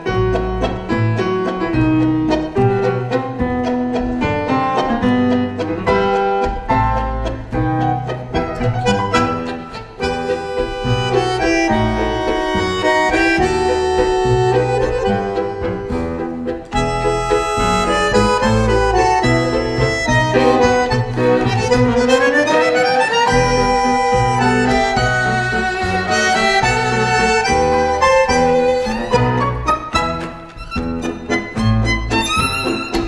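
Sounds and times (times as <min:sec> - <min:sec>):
bandoneon: 0:00.0 - 0:33.0
double bass: 0:00.0 - 0:33.0
piano: 0:00.0 - 0:33.0
violin: 0:00.0 - 0:33.0.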